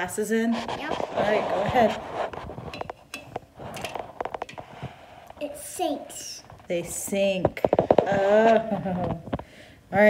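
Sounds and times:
items clinking in metal bowl: 2.7s - 4.7s.

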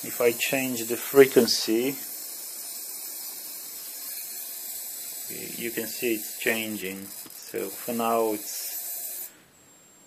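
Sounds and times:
spark gap hissing: 0.0s - 9.4s.

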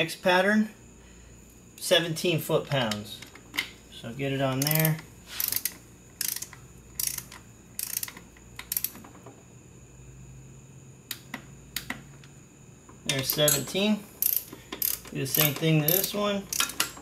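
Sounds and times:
torque wrench ratchet clicking: 4.6s - 9.0s, 13.1s - 17.0s.

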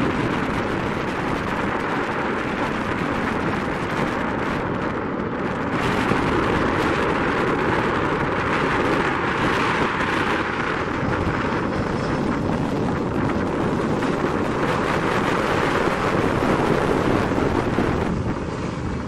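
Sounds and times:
turboprop engines rushing: 0.0s - 19.0s
wind on microphone: 0.0s - 19.0s.

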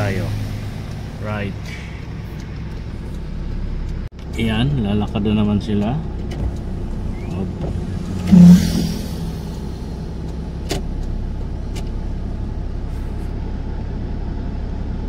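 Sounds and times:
vehicle engine running: 0.0s - 15.0s
motorcycle passing: 7.0s - 10.2s.

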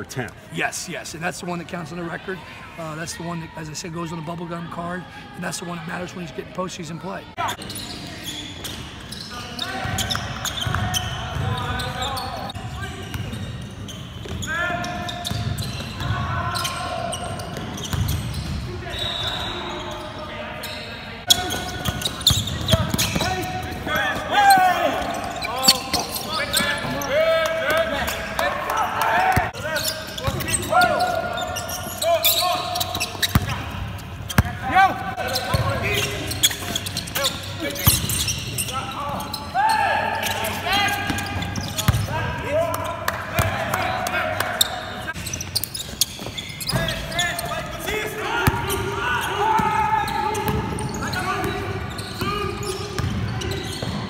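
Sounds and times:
players calling out: 0.0s - 54.0s
sneakers squeaking: 5.6s - 54.0s
basketball bouncing: 17.4s - 18.6s, 21.6s - 26.7s, 32.8s - 34.6s, 41.1s - 42.1s, 53.0s - 54.0s.

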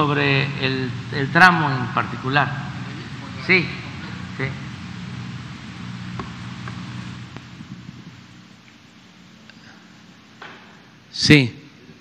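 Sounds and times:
low hum: 0.0s - 11.1s
steady hiss: 0.0s - 12.0s.

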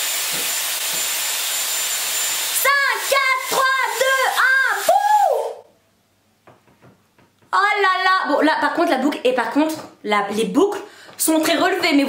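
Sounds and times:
hair styler blowing air: 0.0s - 5.6s.

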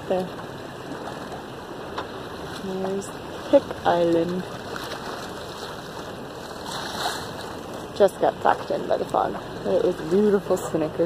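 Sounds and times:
water rushing along boat hull: 0.0s - 11.0s.

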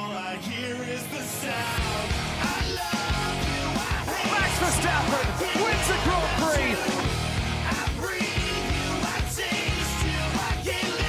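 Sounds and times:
hard rock music: 0.0s - 11.0s.

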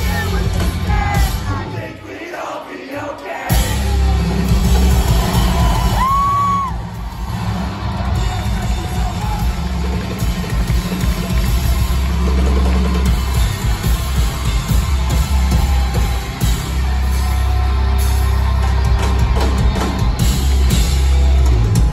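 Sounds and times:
rock band playing live: 0.0s - 2.0s, 3.1s - 21.9s
crowd cheering: 0.0s - 21.9s.

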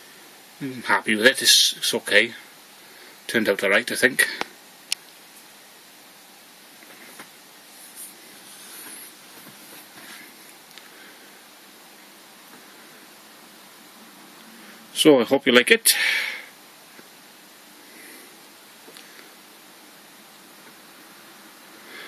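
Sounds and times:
steady hiss: 0.0s - 22.0s
faint rustles: 6.8s - 13.1s.

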